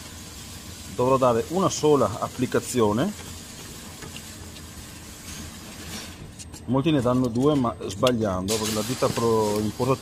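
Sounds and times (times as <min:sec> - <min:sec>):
hiss: 0:00.0 - 0:06.2, 0:08.5 - 0:10.0.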